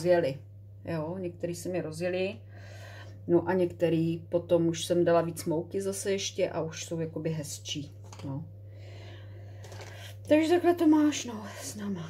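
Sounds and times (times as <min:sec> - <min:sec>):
woman speaking: 0:00.0 - 0:02.4, 0:03.3 - 0:08.5, 0:10.3 - 0:12.0
steady low hum: 0:00.0 - 0:12.0.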